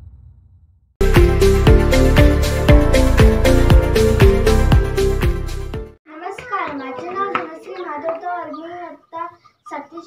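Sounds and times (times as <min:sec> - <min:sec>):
girl speaking: 0:06.1 - 0:10.0.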